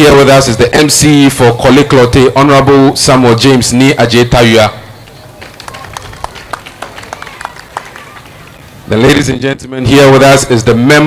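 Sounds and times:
crowd murmur: 4.7s - 9.1s
light clapping: 5.0s - 8.7s.

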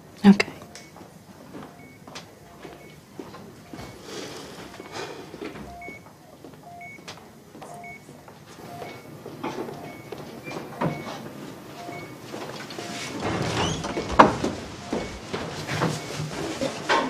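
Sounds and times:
patient monitor beeping: 0.0s - 17.0s.

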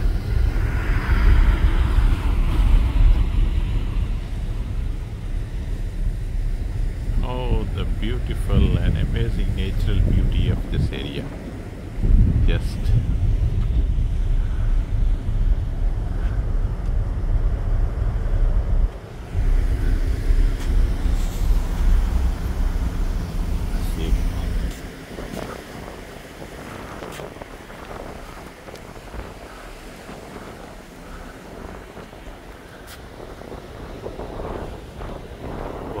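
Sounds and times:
ship engine drone: 0.0s - 36.0s
wind buffeting microphone: 0.0s - 36.0s.

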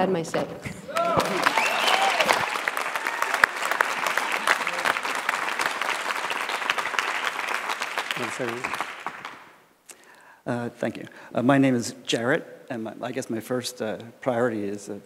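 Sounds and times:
audience applauding: 0.8s - 9.6s.

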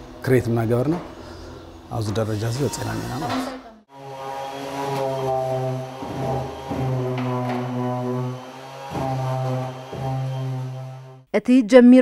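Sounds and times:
electric sander buzzing: 2.4s - 11.3s.

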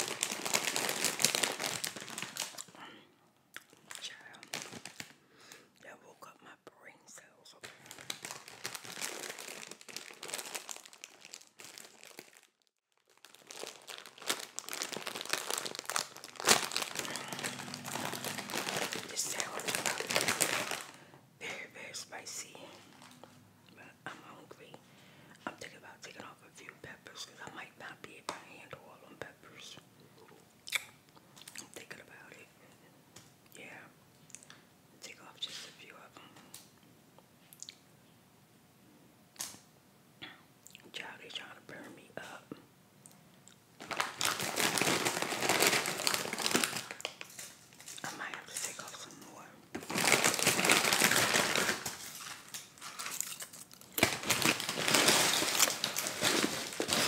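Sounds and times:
food wrapper crinkling: 0.0s - 2.8s, 3.6s - 5.2s, 7.6s - 21.0s, 43.5s - 57.0s.

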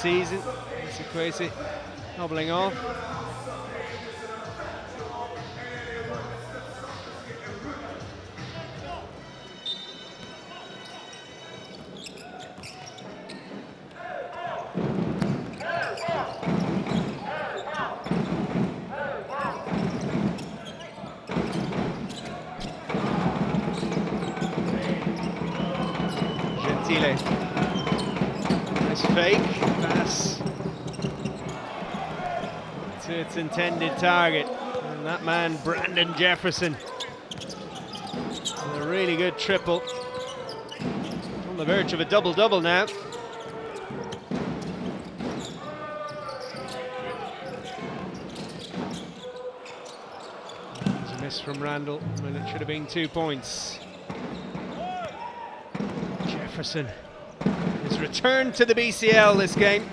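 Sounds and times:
crowd noise: 0.0s - 59.9s.

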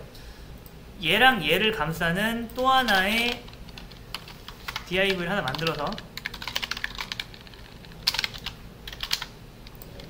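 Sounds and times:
computer keyboard typing: 2.8s - 10.0s.

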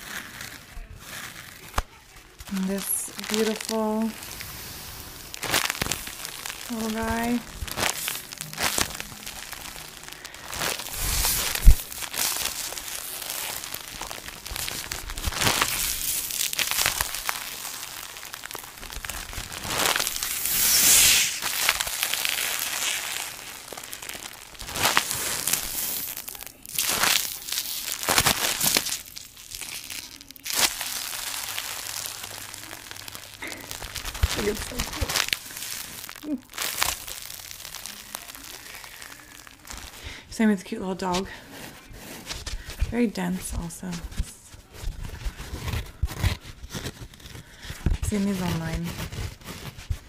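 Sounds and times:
plastic packaging crinkling: 0.0s - 50.0s.

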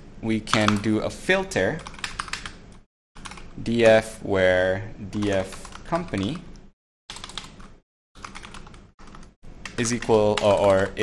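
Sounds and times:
computer keyboard typing: 1.8s - 2.6s, 3.2s - 3.5s, 5.2s - 6.4s, 7.1s - 11.0s.

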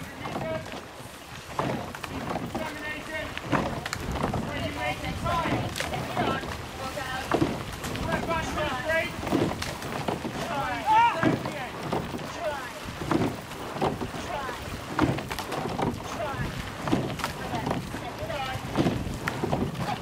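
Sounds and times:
wind buffeting microphone: 0.0s - 20.0s
short knocks: 1.5s - 4.5s, 7.2s - 12.4s, 13.0s - 16.2s, 16.8s - 18.0s, 18.6s - 20.0s
raised voices calling out: 10.2s - 12.8s.

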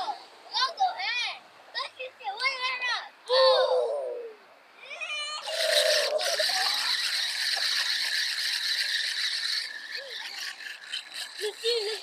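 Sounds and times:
fishing reel whirring: 5.4s - 12.0s.

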